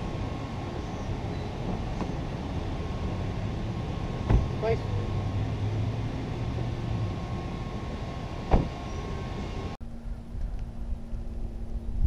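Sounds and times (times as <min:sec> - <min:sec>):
outdoor background noise: 0:00.0 - 0:12.0
car door shutting: 0:04.2 - 0:04.6, 0:08.4 - 0:09.0.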